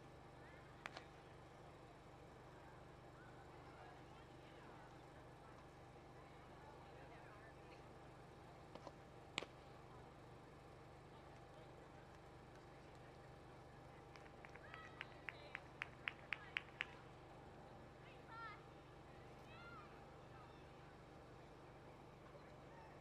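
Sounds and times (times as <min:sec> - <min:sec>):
faint distant voices: 0:00.0 - 0:23.0
people clapping: 0:14.1 - 0:17.0.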